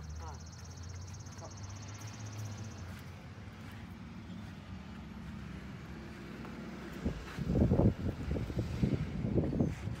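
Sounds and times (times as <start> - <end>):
distant vehicle engine hum: 0.0 - 10.0
faint outdoor background noise: 0.0 - 10.0.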